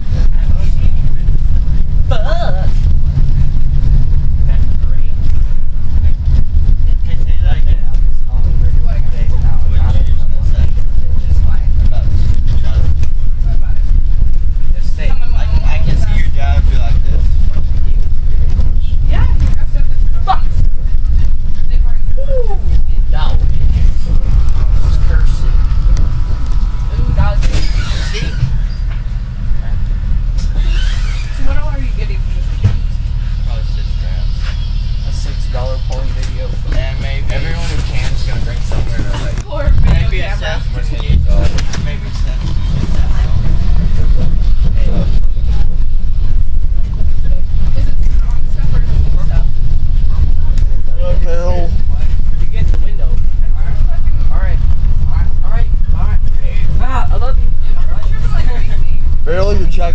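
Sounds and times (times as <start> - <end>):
bus engine and road rumble: 0.0 - 59.9
passengers chattering: 0.0 - 59.9.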